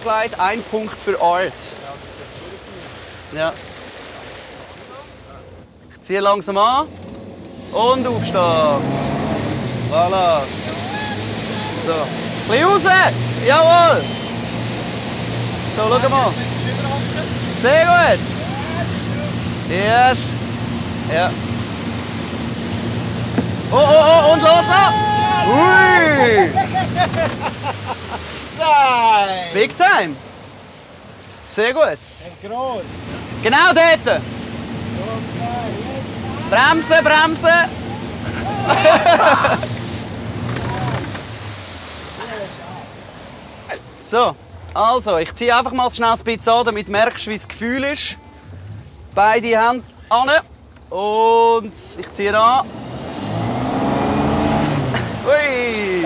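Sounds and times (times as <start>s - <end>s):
water around a boat: 0.0s - 56.0s
wind: 0.0s - 56.0s
man shouting: 10.0s - 14.2s, 17.5s - 20.2s, 23.6s - 27.1s, 28.6s - 30.0s, 36.2s - 39.7s, 55.2s - 56.0s
man laughing: 23.7s - 29.6s, 37.4s - 39.8s, 54.9s - 56.0s.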